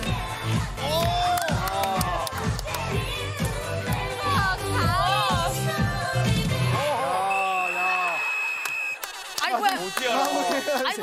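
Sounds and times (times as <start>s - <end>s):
people whooping and cheering: 0.8s - 2.4s, 6.8s - 9.3s.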